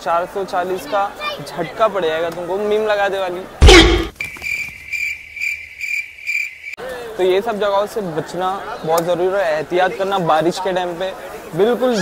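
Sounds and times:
cricket chirping: 4.1s - 6.8s.

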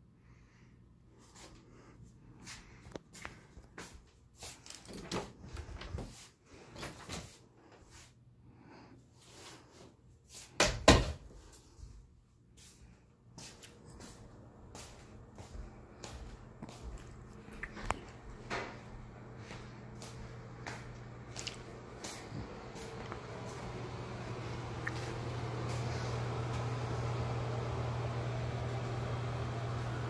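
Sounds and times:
low mechanical hum with hiss: 0.1s - 30.0s
footsteps on hardwood floor: 13.4s - 17.3s, 18.1s - 23.8s.

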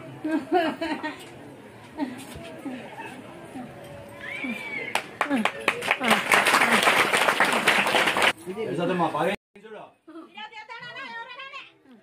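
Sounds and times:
people clapping: 4.9s - 8.4s.

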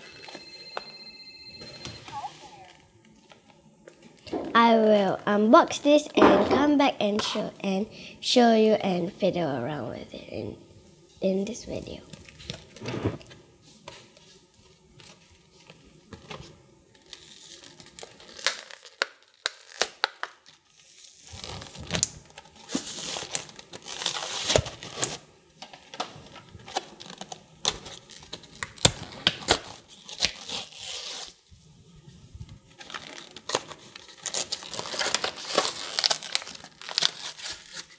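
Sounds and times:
cardboard packaging cracking and snapping: 17.0s - 25.2s, 25.9s - 31.4s, 32.8s - 37.9s.

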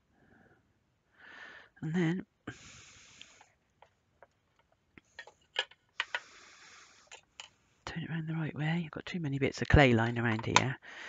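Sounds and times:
tools clicking and tapping: 4.2s - 6.3s.

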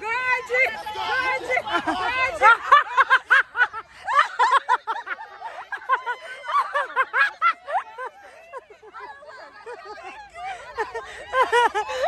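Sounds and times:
people laughing: 0.0s - 12.0s.

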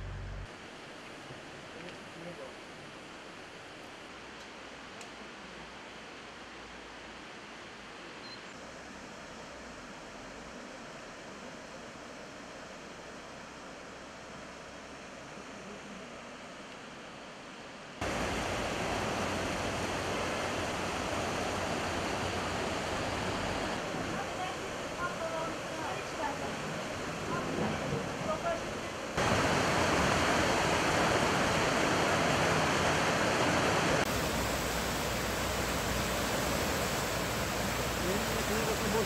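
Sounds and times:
river water rushing: 0.0s - 39.0s.

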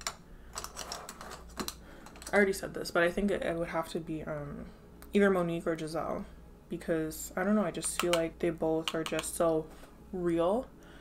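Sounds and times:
light irregular clicks and taps: 7.8s - 9.6s.

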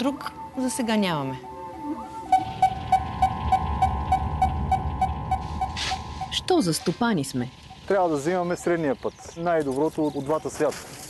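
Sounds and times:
held high tone: 0.0s - 7.6s
low rumble: 1.1s - 9.1s
repeating pitched pulse: 1.4s - 8.8s.

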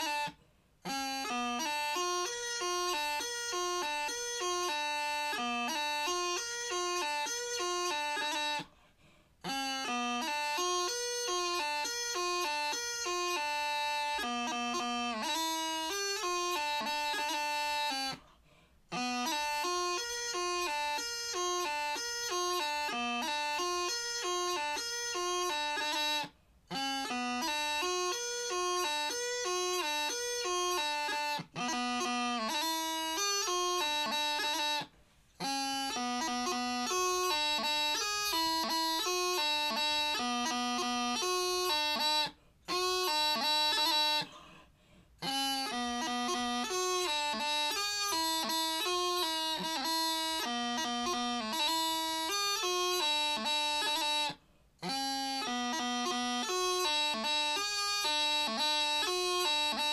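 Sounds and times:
practice chanter playing a jig: 0.0s - 59.9s.

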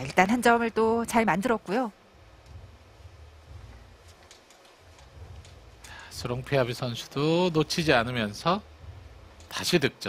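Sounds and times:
low background hush: 0.0s - 10.0s.

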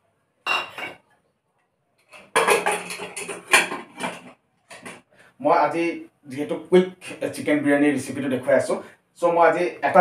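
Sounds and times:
metal clattering and scraping: 2.1s - 5.0s.

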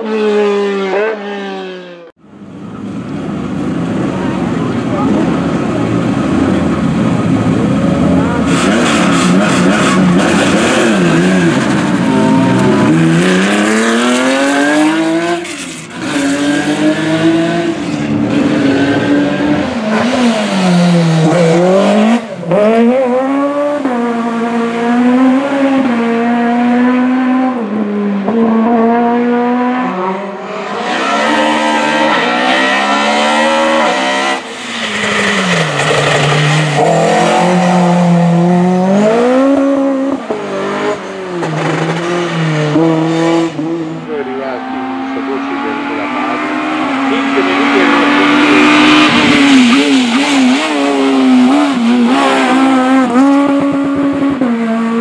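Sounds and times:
race car engines accelerating: 0.0s - 55.0s.

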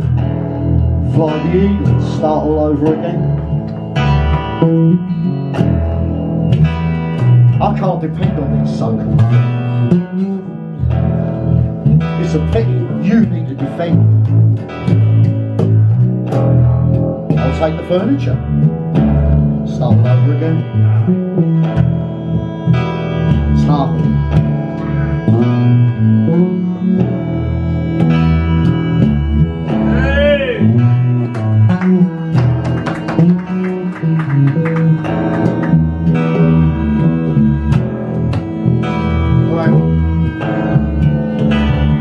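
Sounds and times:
plucked bass guitar: 0.0s - 42.0s
live band playing: 20.8s - 42.0s.

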